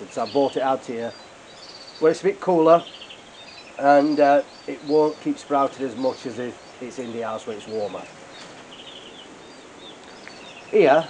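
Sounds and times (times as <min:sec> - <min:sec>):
canaries chirping: 0:00.0 - 0:11.0
steady low hiss: 0:00.0 - 0:11.0.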